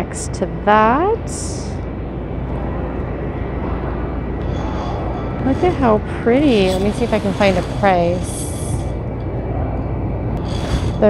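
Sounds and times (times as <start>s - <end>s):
grocery store background hum: 0.0s - 11.0s.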